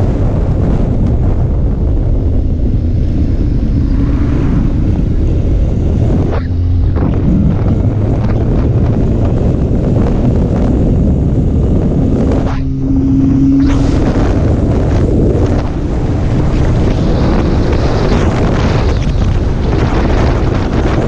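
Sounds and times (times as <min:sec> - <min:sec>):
motorcycle engine steady tone: 0:00.0 - 0:21.0
wind buffeting microphone: 0:00.0 - 0:21.0.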